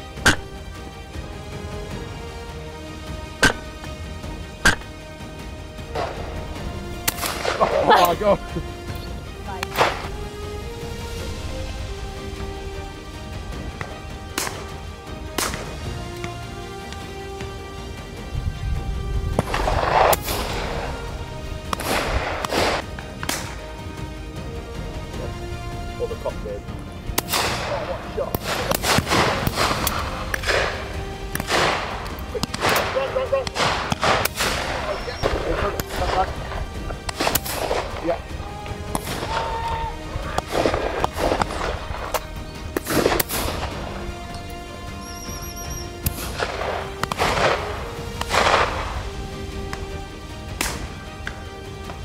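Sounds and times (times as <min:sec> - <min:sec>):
background music sustained notes: 0:00.0 - 0:52.0
shotguns firing: 0:03.4 - 0:03.8, 0:05.9 - 0:06.4, 0:07.0 - 0:08.2, 0:09.7 - 0:10.1, 0:13.6 - 0:15.8, 0:19.4 - 0:23.7, 0:27.1 - 0:38.2, 0:38.8 - 0:39.5, 0:40.3 - 0:44.2, 0:46.0 - 0:49.0, 0:50.5 - 0:51.0.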